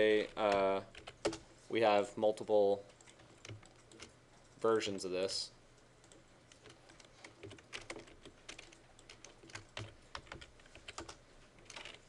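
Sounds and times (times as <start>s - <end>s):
computer keyboard typing: 0.2s - 1.4s, 3.0s - 4.5s, 6.0s - 12.0s.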